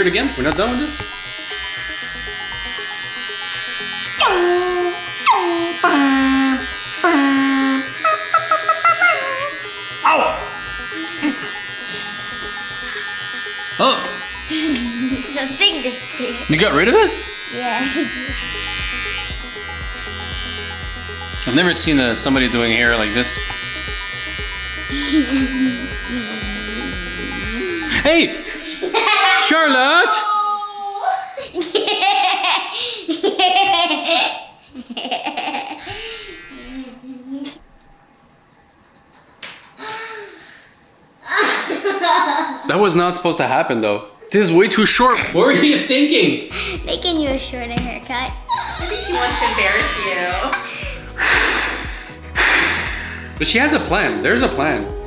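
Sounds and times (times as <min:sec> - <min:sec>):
electric shaver buzzing: 0:00.0 - 0:30.3, 0:33.2 - 0:37.6, 0:45.6 - 0:55.0
background music with singing: 0:48.5 - 0:55.0.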